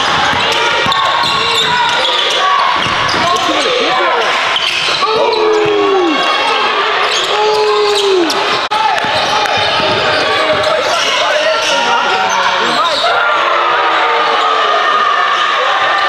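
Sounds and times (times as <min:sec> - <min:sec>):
basketball bouncing: 0:00.0 - 0:02.1, 0:08.9 - 0:10.9
sneakers squeaking: 0:00.0 - 0:13.4
players calling out: 0:00.0 - 0:16.0.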